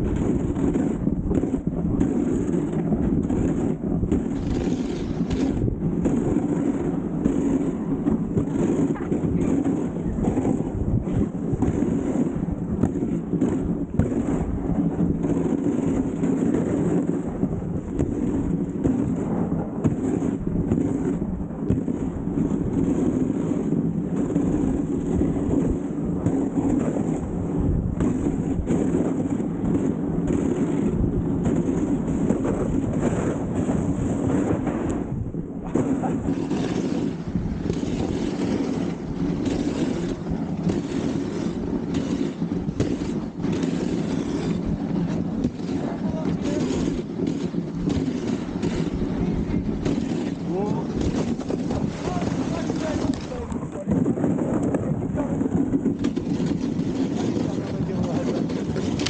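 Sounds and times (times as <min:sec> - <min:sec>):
sled runners scraping on snow: 0:00.0 - 0:59.0
wind on microphone: 0:00.0 - 0:59.0.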